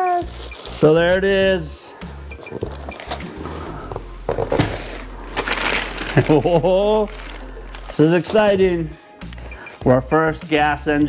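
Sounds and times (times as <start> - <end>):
plastic packaging rustling: 0.0 - 0.9, 2.4 - 8.6
background music: 0.0 - 11.0
cardboard box set down: 2.7 - 6.3.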